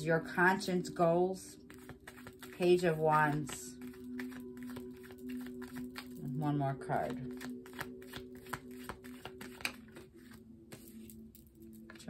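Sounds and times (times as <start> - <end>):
cards being shuffled: 1.6 - 6.4, 7.0 - 12.0.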